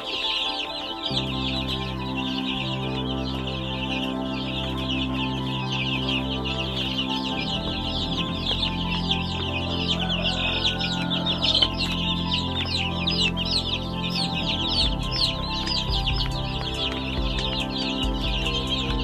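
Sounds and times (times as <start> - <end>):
baby chicks peeping: 0.0 - 19.0.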